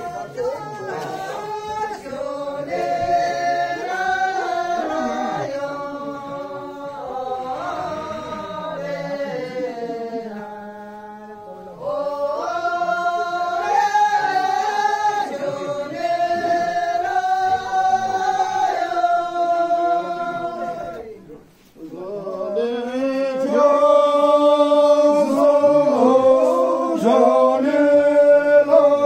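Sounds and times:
group singing chant-like song: 0.0 - 29.0.

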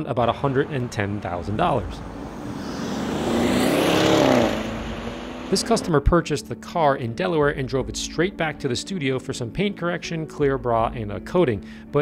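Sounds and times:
car engine passing by: 0.2 - 5.9.

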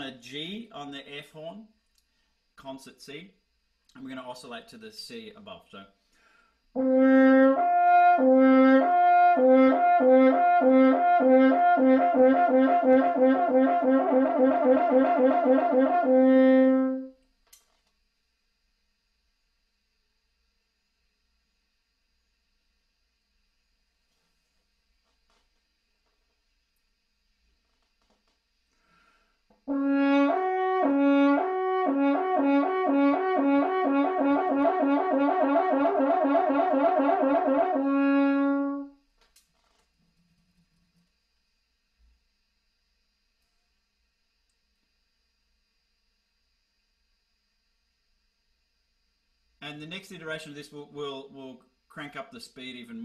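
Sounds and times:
french horn lip trill: 6.8 - 17.2, 29.7 - 39.0.

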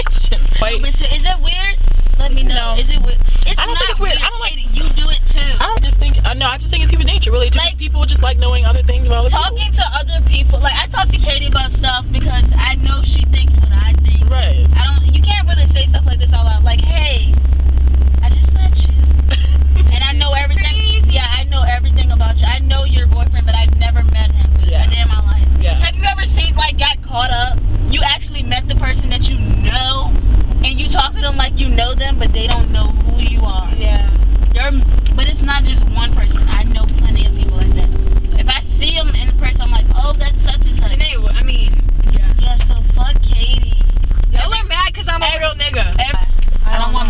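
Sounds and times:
car cabin engine and road rumble: 0.0 - 47.0
voices talking: 0.0 - 47.0.

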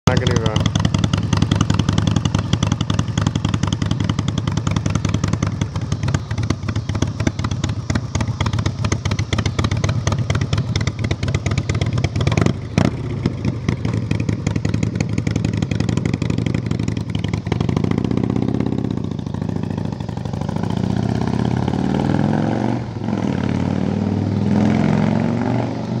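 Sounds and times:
motorcycle engine idling: 0.1 - 23.6
motorcycle revving and riding off: 0.1 - 26.0.

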